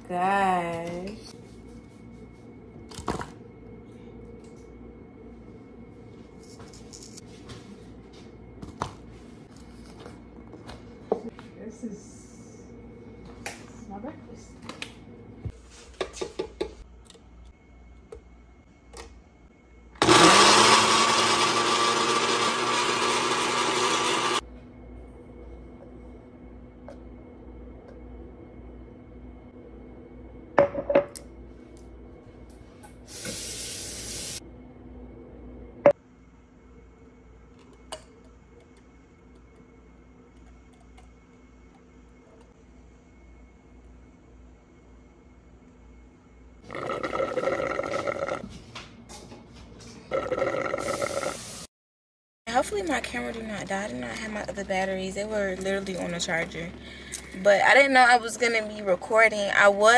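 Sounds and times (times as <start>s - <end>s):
blender running: 20.0s - 24.4s.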